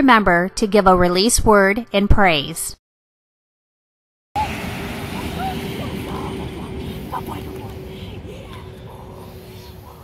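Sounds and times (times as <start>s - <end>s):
steady low hum: 4.4s - 10.0s
wind rumbling on microphone: 4.4s - 10.0s
faint chirps: 5.1s - 10.0s.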